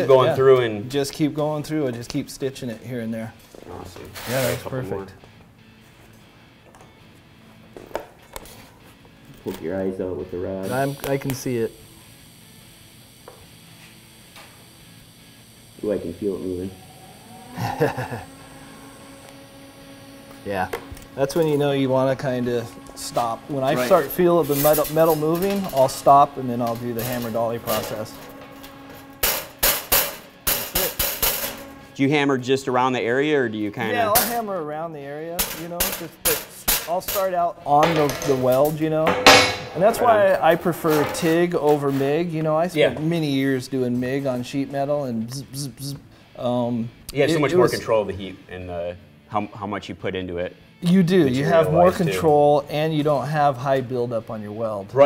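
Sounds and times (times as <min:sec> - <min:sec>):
faint background music: 0:00.0 - 0:55.0
hammer striking sheet steel: 0:24.2 - 0:31.8, 0:35.4 - 0:38.4, 0:39.0 - 0:39.9.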